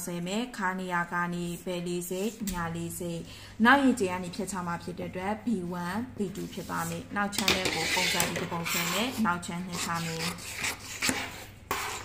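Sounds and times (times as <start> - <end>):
woman talking: 0.0 - 10.4
pen scratching on paper: 7.6 - 12.0.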